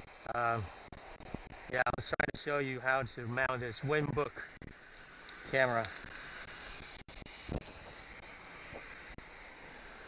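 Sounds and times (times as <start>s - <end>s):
wind on microphone: 0.0s - 1.7s, 5.4s - 10.0s.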